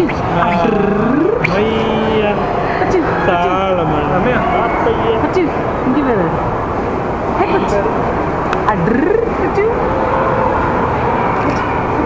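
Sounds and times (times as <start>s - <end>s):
busy shop hubbub: 0.0s - 12.0s.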